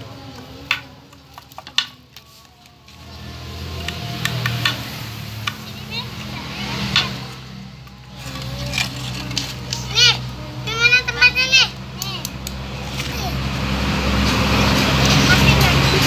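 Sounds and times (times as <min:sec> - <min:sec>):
children's voices: 0:03.8 - 0:16.0
children calling out: 0:05.4 - 0:16.0.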